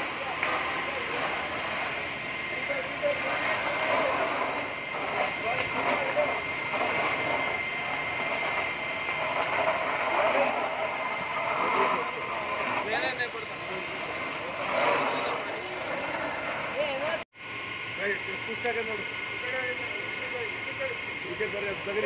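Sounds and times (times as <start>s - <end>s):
fire hose jet rushing: 0.0s - 17.2s
people's voices: 0.0s - 17.2s
thin steady whine: 0.0s - 22.0s.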